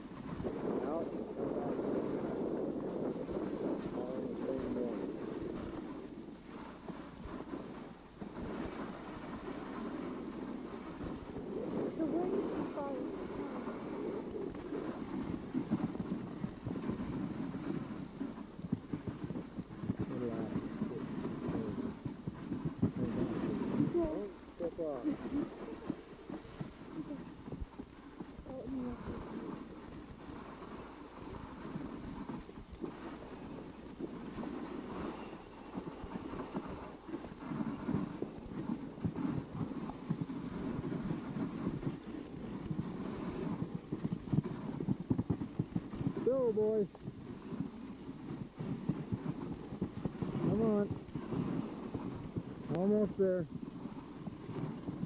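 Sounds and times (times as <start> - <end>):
sled runners scraping on snow: 0.0 - 55.0.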